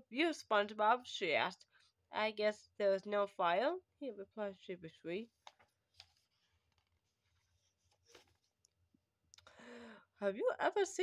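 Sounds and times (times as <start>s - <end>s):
paper page turning: 5.4s - 8.5s.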